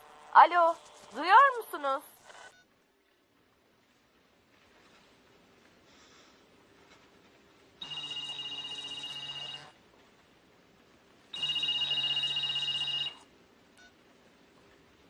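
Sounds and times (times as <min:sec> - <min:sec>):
phone ringing: 0:07.8 - 0:09.8, 0:11.3 - 0:13.3.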